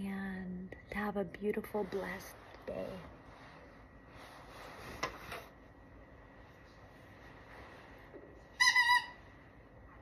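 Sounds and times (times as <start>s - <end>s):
high-pitched squeak: 8.5s - 9.3s.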